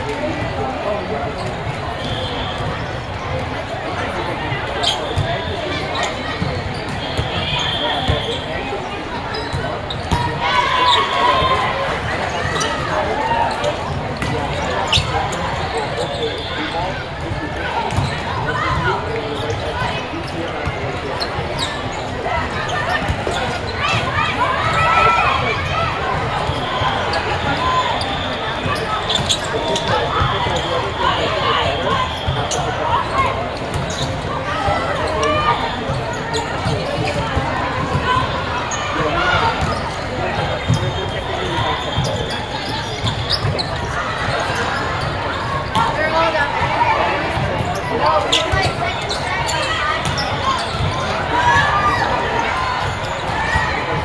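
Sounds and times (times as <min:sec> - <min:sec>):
din of voices in hall: 0:00.0 - 0:54.0.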